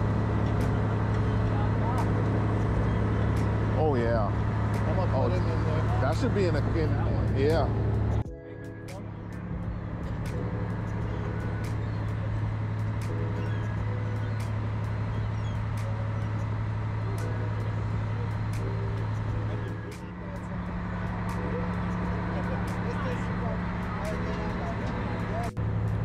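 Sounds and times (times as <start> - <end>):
boat engine droning: 0.0 - 26.0
faint voices: 0.6 - 25.6.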